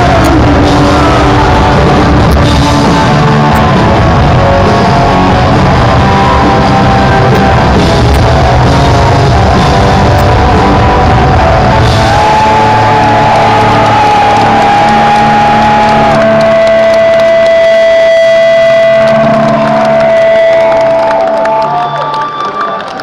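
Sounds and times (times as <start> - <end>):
drums: 0.0 - 21.4
bass guitar: 0.0 - 22.0
crowd cheering: 0.0 - 23.0
electric guitar: 0.0 - 23.0.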